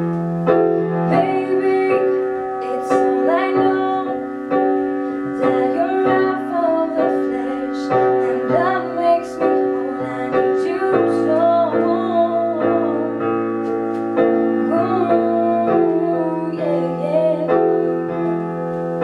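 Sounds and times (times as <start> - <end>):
piano chords: 0.0 - 19.0
girls singing: 1.1 - 4.3, 5.2 - 13.3, 14.6 - 18.3.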